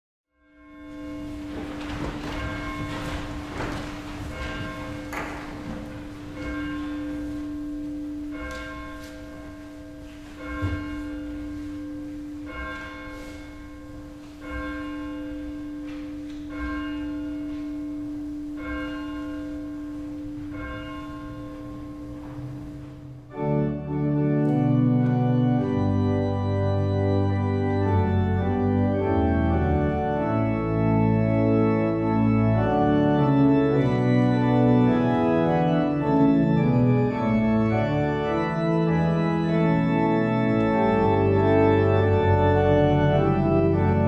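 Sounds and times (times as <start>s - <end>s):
church bell tolling: 0.4s - 44.0s.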